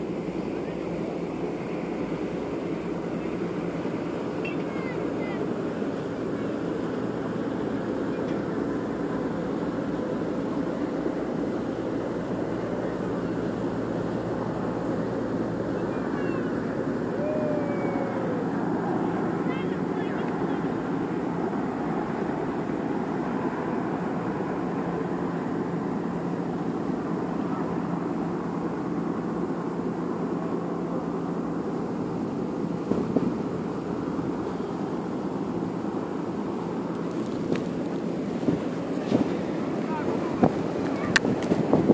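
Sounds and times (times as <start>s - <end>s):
low drone: 0.0s - 40.8s
distant voices: 0.0s - 41.9s.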